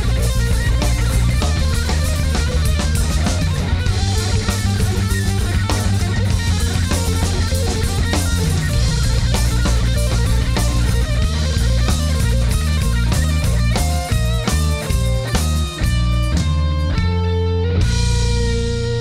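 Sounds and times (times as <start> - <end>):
bass guitar: 0.0 - 19.0
drum kit: 0.0 - 19.0
electric guitar lead: 0.0 - 19.0.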